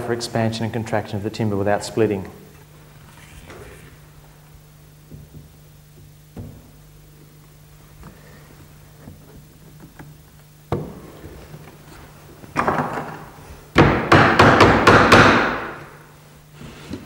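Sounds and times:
mallet knocking on wood: 0:13.8 - 0:15.8.

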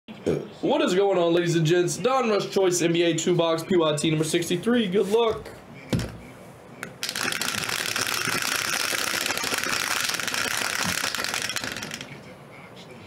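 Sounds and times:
dice rattling in plastic dome: 0:07.0 - 0:12.1.

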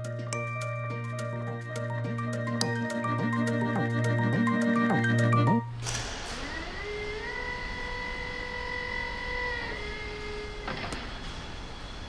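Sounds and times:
machine whine: 0:00.9 - 0:12.0.

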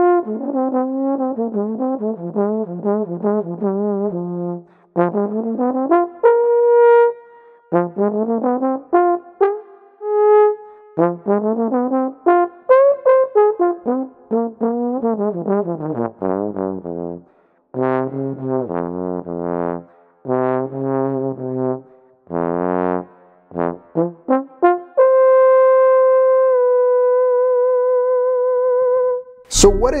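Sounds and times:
solo trombone playing: 0:00.0 - 0:03.0.

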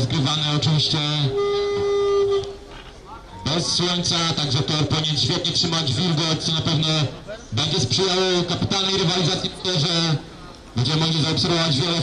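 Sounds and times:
man speaking: 0:00.0 - 0:01.4, 0:03.0 - 0:12.0.

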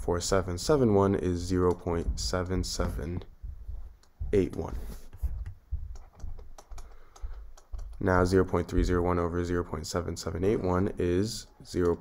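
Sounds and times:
typing on computer keyboard: 0:05.4 - 0:08.1.

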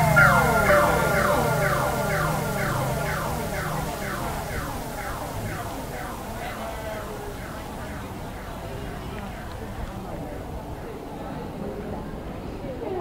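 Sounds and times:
electronic falling-tone sweeps: 0:00.0 - 0:11.0.

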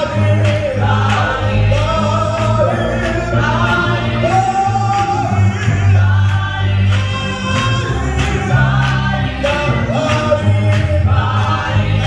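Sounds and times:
deep bass accompaniment: 0:00.0 - 0:12.0
group of singers: 0:00.0 - 0:12.0
male lead voice singing: 0:00.0 - 0:12.0.

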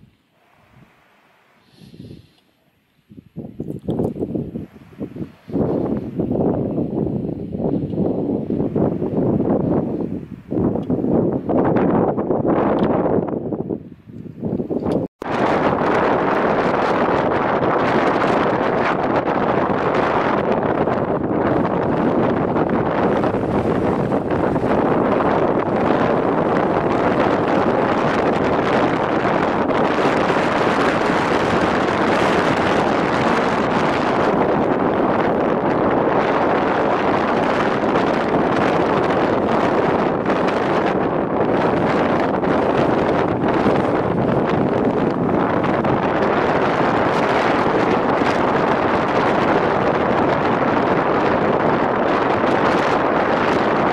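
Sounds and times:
wind blowing on microphone: 0:00.0 - 0:53.9.

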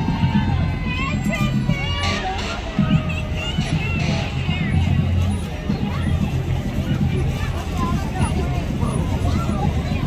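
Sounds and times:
spectators chattering: 0:00.0 - 0:10.0
vehicles driving slowly past: 0:00.0 - 0:10.0.

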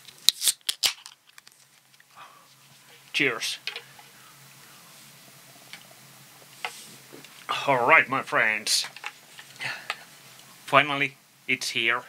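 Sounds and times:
drink can pull tab opening: 0:00.3 - 0:01.5.

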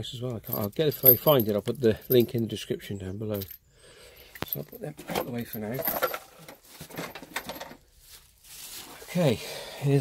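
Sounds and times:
padlocks clicking and rattling: 0:00.4 - 0:02.5.

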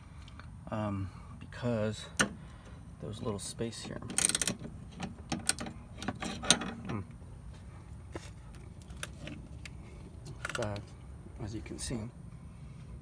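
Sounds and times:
ratchet wrench clicking: 0:04.1 - 0:04.6.

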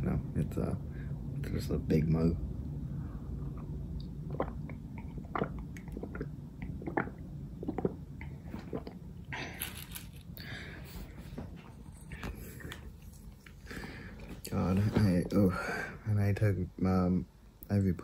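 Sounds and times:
person gulping water: 0:03.4 - 0:10.6.

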